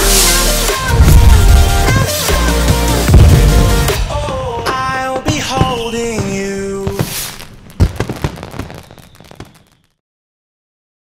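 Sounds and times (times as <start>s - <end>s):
firework bang: 3.1s - 4.5s, 6.9s - 9.9s
fireworks popping and crackling: 3.1s - 10.0s.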